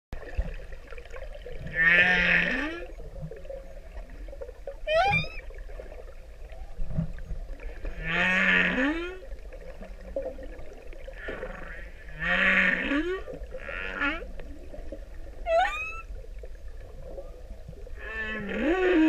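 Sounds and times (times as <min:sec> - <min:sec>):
humpback whale singing: 0:04.8 - 0:05.5, 0:15.4 - 0:16.2.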